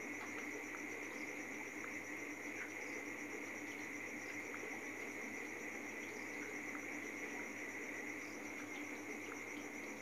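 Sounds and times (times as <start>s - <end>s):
faint ticks: 0.0s - 2.9s, 3.6s - 7.5s.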